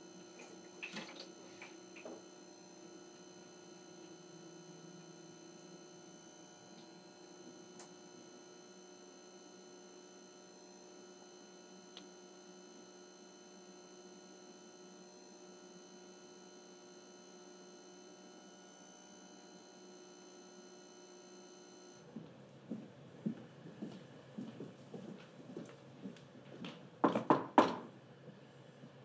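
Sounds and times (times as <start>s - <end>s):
faint electrical hum: 0.0s - 29.0s
footsteps on hard floor: 22.2s - 27.2s.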